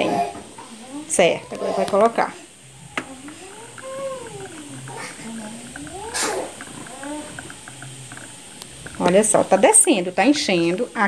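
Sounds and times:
ink gurgling from bottle: 2.7s - 10.1s.

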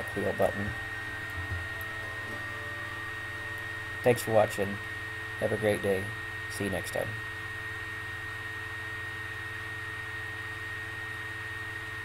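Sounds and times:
electrical hum and hiss: 0.0s - 12.0s
thin high whine: 0.0s - 12.0s.

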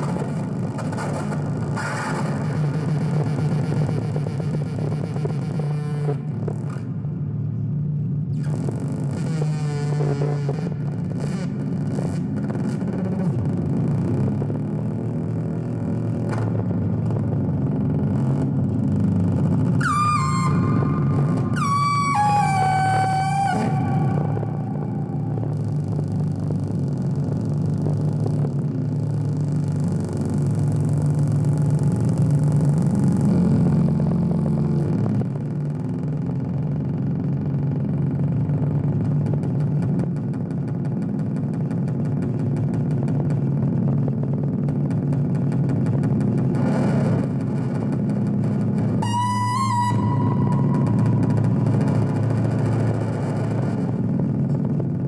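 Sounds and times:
synthesizer noise drone: 10.6s - 35.9s, 48.5s - 55.0s
pitched squealing tones: 19.8s - 26.3s, 49.0s - 52.8s.

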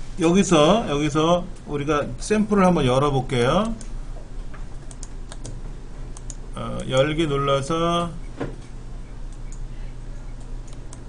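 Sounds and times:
computer mouse clicks: 4.7s - 5.6s, 6.2s - 7.0s, 8.6s - 9.7s, 10.3s - 11.0s.

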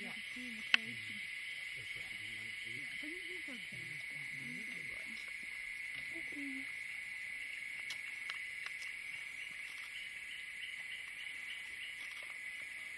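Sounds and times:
high-pitched insect chorus: 0.0s - 12.9s.

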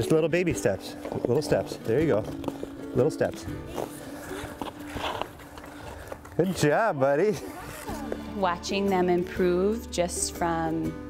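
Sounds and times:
skates scraping on ice: 0.8s - 8.3s.

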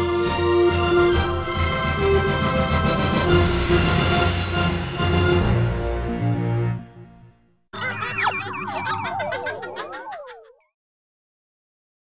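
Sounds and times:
warbling electronic tones: 7.8s - 10.6s.

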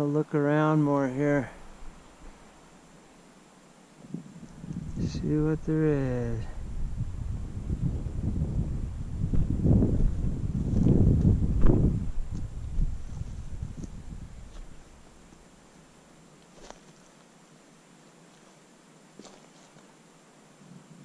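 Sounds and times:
wind buffeting microphone: 4.0s - 15.1s
footsteps on stony ground: 10.5s - 15.5s, 16.4s - 17.3s, 18.3s - 18.6s, 19.2s - 19.9s.

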